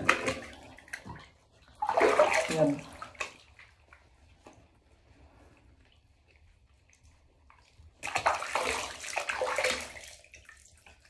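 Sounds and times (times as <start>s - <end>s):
water splashing in bathtub: 0.0s - 11.0s.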